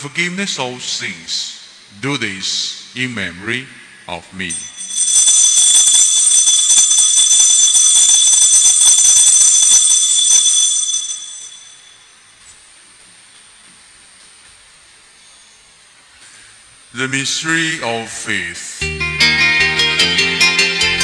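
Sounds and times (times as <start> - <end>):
altar bells jingling: 4.5 - 12.2.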